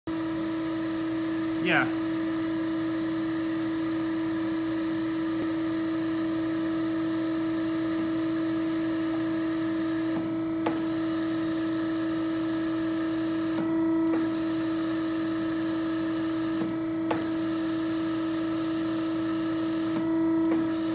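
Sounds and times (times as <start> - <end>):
hydraulic pump electric hum: 0.1 - 20.9.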